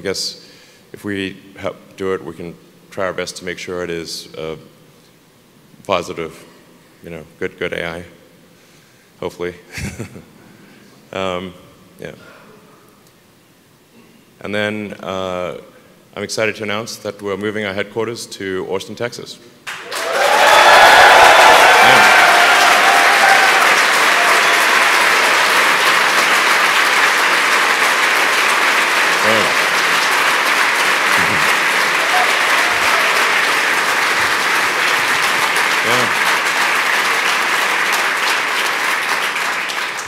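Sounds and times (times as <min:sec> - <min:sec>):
audience applauding: 0:19.7 - 0:40.0
audience whooping: 0:19.7 - 0:40.0.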